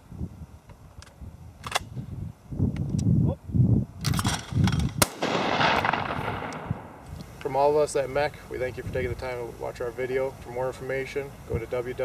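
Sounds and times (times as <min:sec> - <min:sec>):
wind rumble on microphone: 0:00.0 - 0:07.4, 0:08.5 - 0:09.4
shotgun firing with echo: 0:05.0 - 0:07.0.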